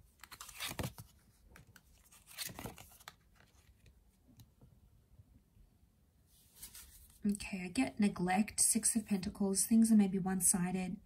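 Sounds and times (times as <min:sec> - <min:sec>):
cards rustling and clicking: 0:00.0 - 0:04.5.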